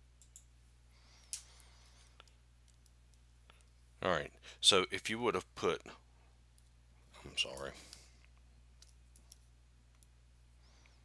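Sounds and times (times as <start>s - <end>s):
faint room hum: 0.0s - 11.0s
soft clicks: 0.2s - 0.5s.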